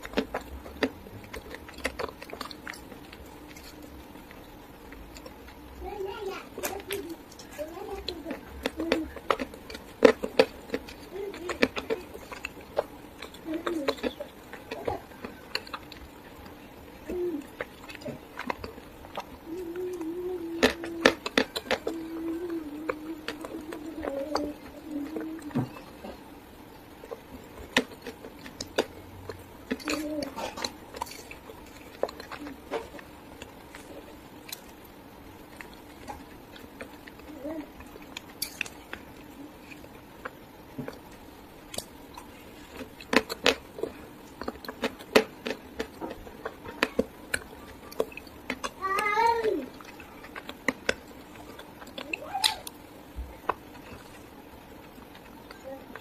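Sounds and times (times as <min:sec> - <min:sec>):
chalk crunching while chewed: 0:00.0 - 0:05.7, 0:06.6 - 0:26.3, 0:27.0 - 0:56.0.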